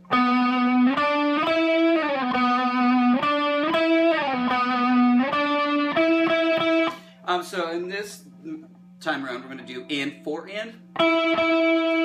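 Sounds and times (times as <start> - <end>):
electric guitar with chorus effect: 0.0 - 7.2, 10.7 - 12.0.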